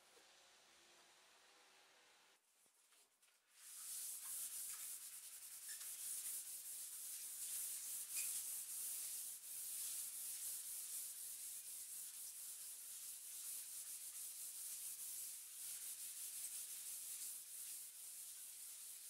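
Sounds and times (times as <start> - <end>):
sandpaper rubbing on wood: 3.6 - 19.0.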